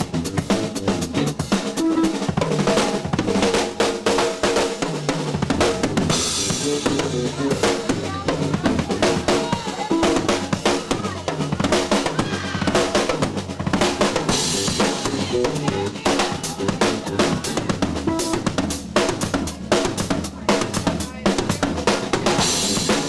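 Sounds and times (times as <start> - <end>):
live blues-rock band: 0.0 - 23.0.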